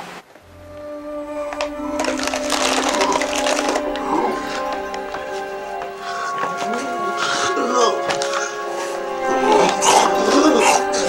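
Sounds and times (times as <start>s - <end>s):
paper bag crinkling: 1.4s - 7.0s.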